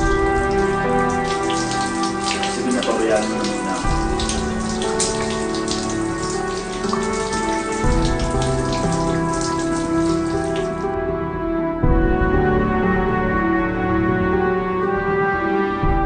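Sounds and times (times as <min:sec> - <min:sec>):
shower water spraying: 0:00.0 - 0:10.8
soft sustained music: 0:00.0 - 0:16.0.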